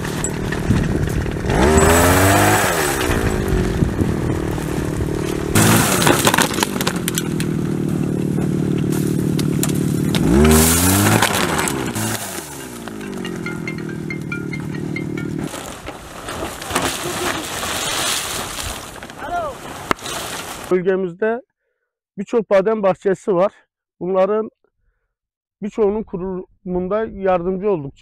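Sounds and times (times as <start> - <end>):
small petrol engine revving: 0.0 - 19.0
tree branches rattling: 0.0 - 20.7.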